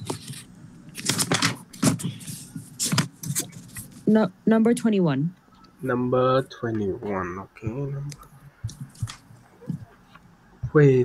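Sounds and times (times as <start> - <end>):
rustling near microphone: 0.0 - 4.1
low steady hum: 0.0 - 11.0.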